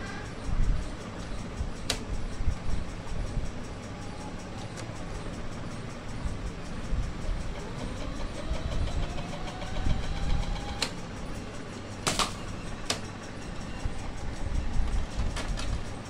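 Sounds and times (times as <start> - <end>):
sharp mechanical click: 0.0 - 16.0
tape mechanism whirring: 0.0 - 16.0.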